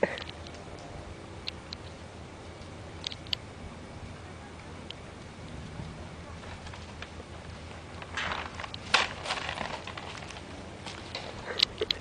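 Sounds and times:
plastic bag crinkling: 6.4s - 11.3s.

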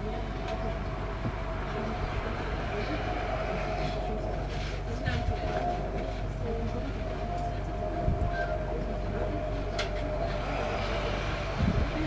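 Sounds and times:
constant whine: 0.0s - 12.0s
train carriage hum: 0.0s - 12.0s.

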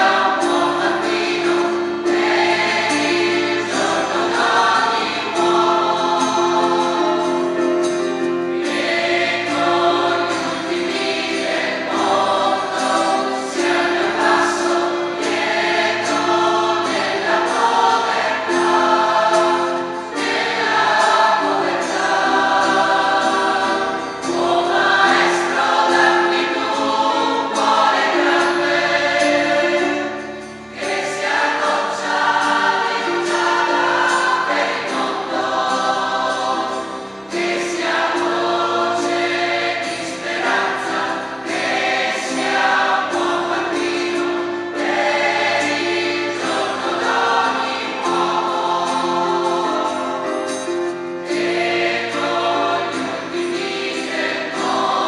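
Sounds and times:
choir singing a hymn: 0.0s - 55.0s
guitar: 0.0s - 55.0s
keyboard: 0.0s - 55.0s.

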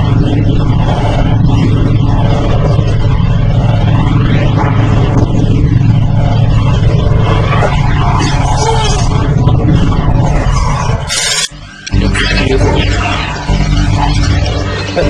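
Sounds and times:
motorcycle engine rumble: 0.0s - 15.0s.

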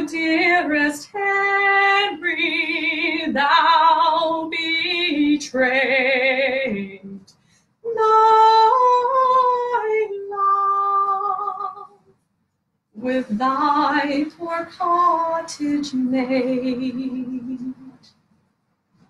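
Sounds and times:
woman singing unaccompanied: 0.0s - 12.0s, 13.0s - 18.0s.

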